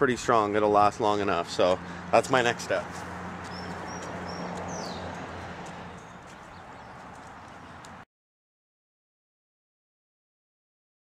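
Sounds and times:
high bird chirps: 3.4 - 7.9.

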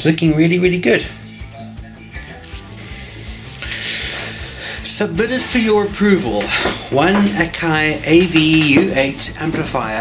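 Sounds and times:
music with low beat: 1.1 - 10.0.

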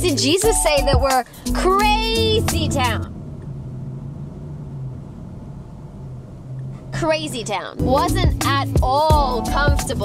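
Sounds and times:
car engine and road rumble: 0.0 - 10.0
faint constant hum: 0.1 - 10.0.

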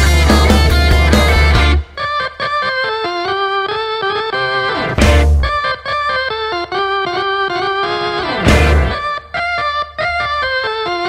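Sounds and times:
keyboard melody of held notes: 0.0 - 11.0.

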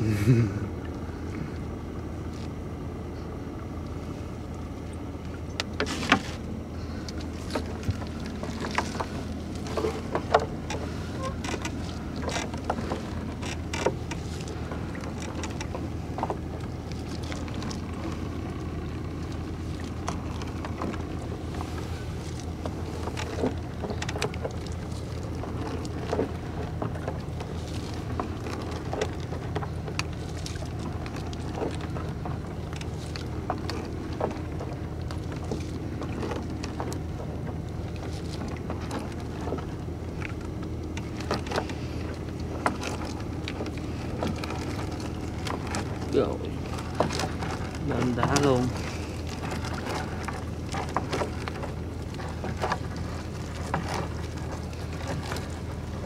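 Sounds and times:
low motor hum: 0.0 - 56.0.

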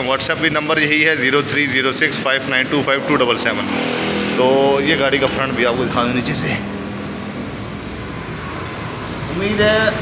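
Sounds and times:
motor vehicle hiss and rumble: 0.0 - 10.0.

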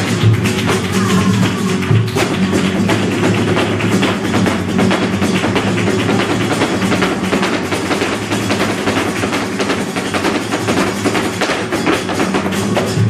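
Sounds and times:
dancer's percussive footwork: 0.0 - 13.0
guitar strummed and plucked: 0.0 - 13.0
rapid hand clapping: 0.0 - 13.0.

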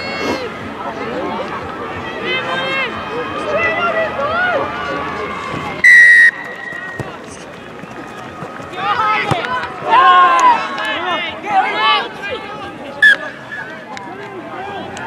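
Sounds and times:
referee's whistle blast: 5.8 - 6.8, 13.0 - 13.4.

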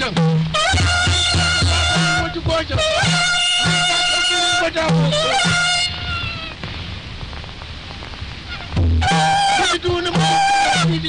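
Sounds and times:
low background rumble: 0.0 - 11.0
held sung or fiddle note: 0.5 - 6.0, 9.0 - 11.0.

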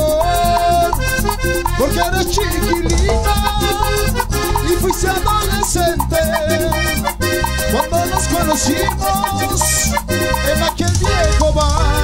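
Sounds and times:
keyboard melody: 0.0 - 12.0
live dance band music: 0.0 - 12.0.

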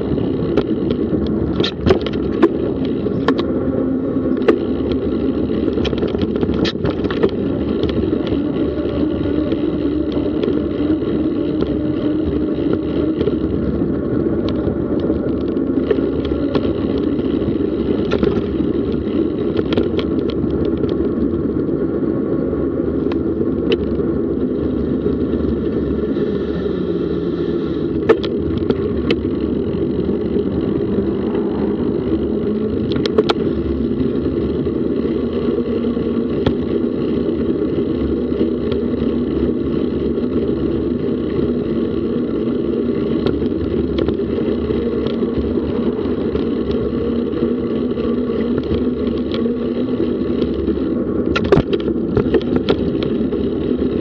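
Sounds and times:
vehicle rumbling on road: 0.0 - 54.0.

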